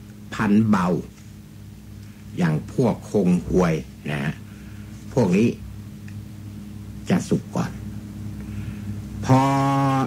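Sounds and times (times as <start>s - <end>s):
low steady hum: 0.0s - 10.0s
man holding a drawn-out syllable: 9.2s - 10.0s.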